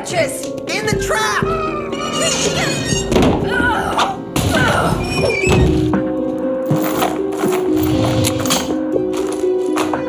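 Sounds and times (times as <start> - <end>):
music of sustained notes: 5.7 - 10.0
heavy chain clinking and rattling: 6.7 - 8.8.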